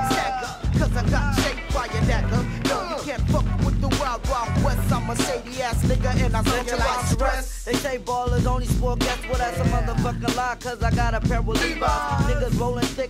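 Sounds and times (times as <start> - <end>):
heavy bass line: 0.0 - 13.0
rapping over a beat: 0.0 - 13.0.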